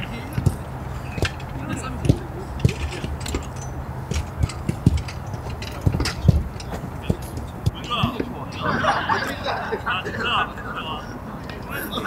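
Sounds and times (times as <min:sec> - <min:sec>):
soft irregular thumps: 0:00.0 - 0:08.6.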